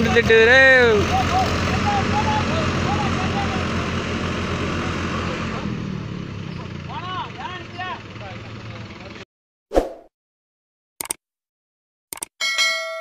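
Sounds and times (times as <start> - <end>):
onlookers shouting: 0.0 - 5.6
tractor diesel engines under load: 0.0 - 9.2.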